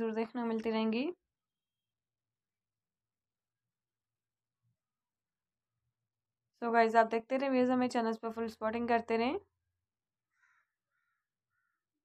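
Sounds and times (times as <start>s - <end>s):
faint short animal calls: 10.3s - 11.8s.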